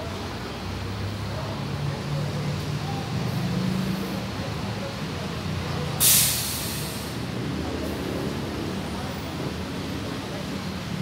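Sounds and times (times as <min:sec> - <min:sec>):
bus diesel engine running: 0:00.0 - 0:11.0
air brakes hissing: 0:06.0 - 0:07.2.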